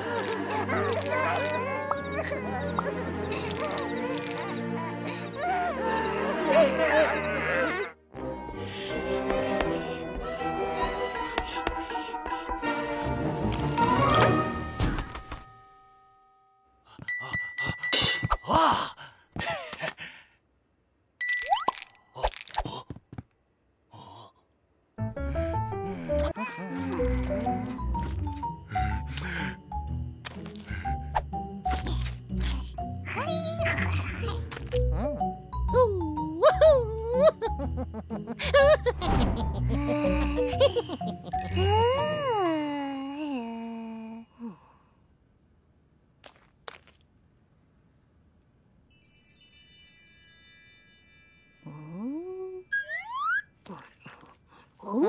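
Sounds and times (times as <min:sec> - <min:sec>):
high ding: 0:15.0 - 0:18.6
cartoon chime: 0:21.2 - 0:22.1.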